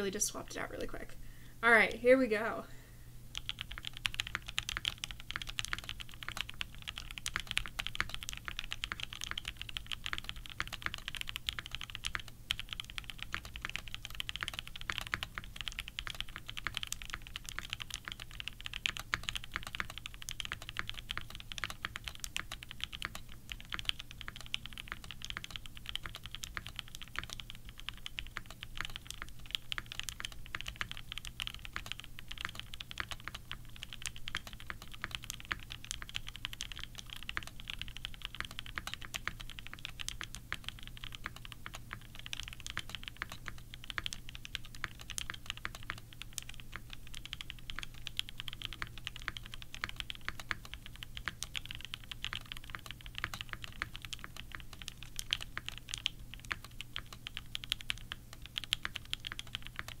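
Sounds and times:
mechanical keyboard typing: 0:03.3 - 1:00.0.

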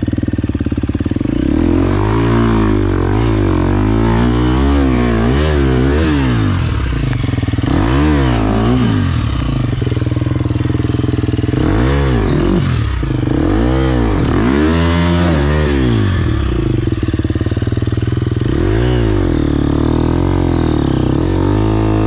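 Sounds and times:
dirt bike engine revving: 0:00.0 - 0:22.0.

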